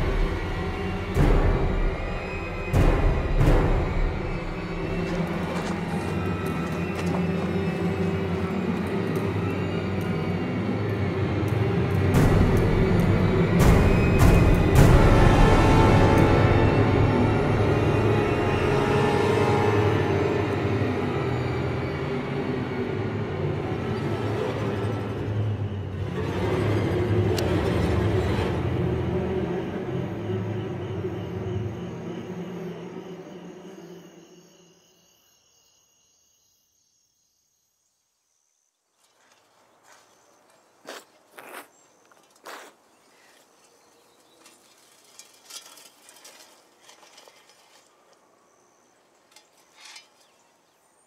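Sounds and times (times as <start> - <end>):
low rumbling ambient drone: 0.0 - 35.0
crickets chirping: 0.0 - 51.0.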